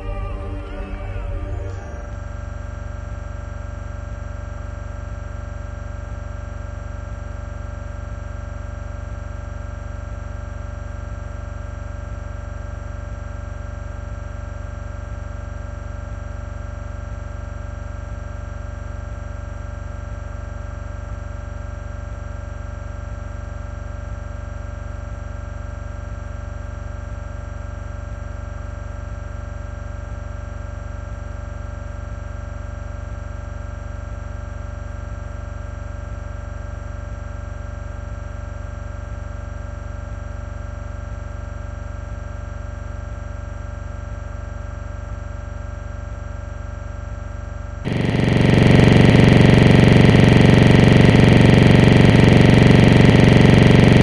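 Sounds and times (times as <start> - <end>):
electronic drone with fixed tones: 0.0 - 2.8, 47.9 - 54.0.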